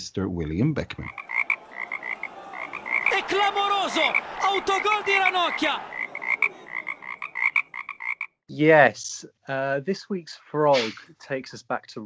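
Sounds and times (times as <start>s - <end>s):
frog croaking: 1.0s - 3.2s, 5.9s - 8.4s
longer lower croaking calls: 1.0s - 8.4s.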